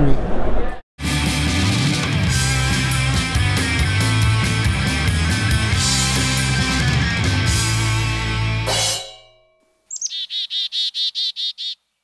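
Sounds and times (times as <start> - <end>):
chickadee call: 9.9 - 11.8.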